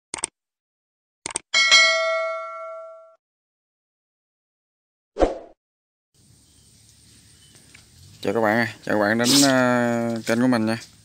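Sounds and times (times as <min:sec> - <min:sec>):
notification bell ding: 0:01.6 - 0:03.2.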